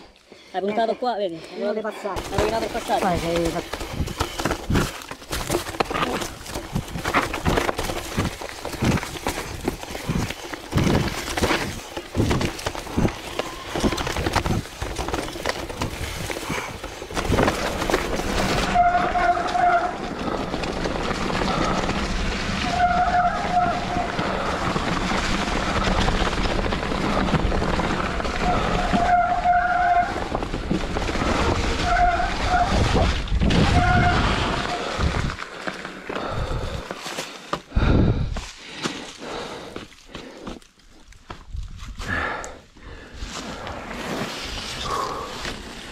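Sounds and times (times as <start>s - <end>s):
bike tyres rolling and rattling: 2.2s - 45.9s.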